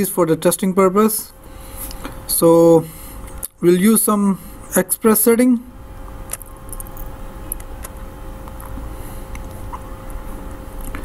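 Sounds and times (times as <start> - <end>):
electrical hum: 0.0 - 11.0.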